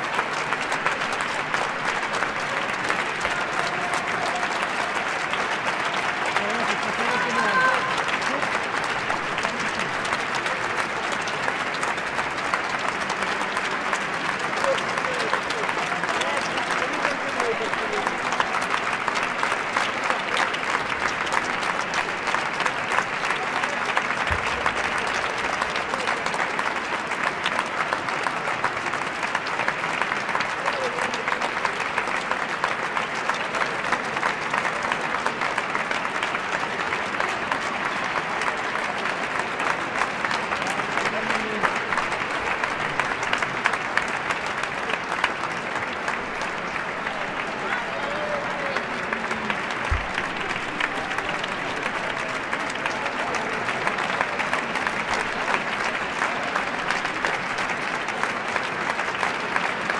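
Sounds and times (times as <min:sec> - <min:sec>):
crowd applauding: 0:00.0 - 0:59.9.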